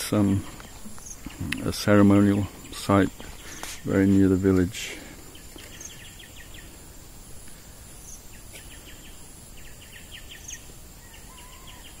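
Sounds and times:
low steady background haze: 0.0 - 12.0.

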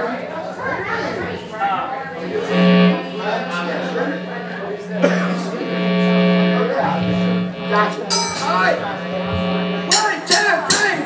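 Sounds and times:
voices in a room: 0.0 - 11.0
steady low held tone: 0.8 - 10.4
electric guitar note: 2.2 - 10.8.

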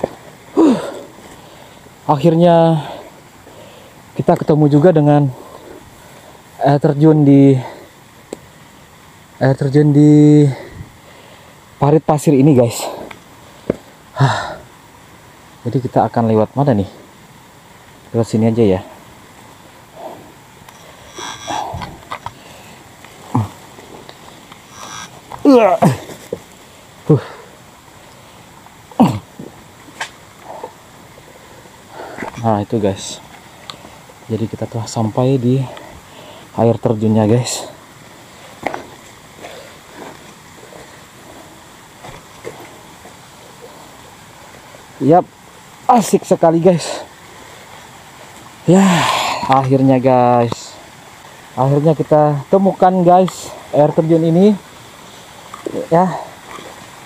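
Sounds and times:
waterfall and stream rushing: 0.0 - 57.0
person grunting: 0.6 - 1.1, 14.2 - 14.6, 21.1 - 22.1, 23.3 - 23.6, 24.8 - 26.2, 29.0 - 29.3, 48.7 - 49.6.

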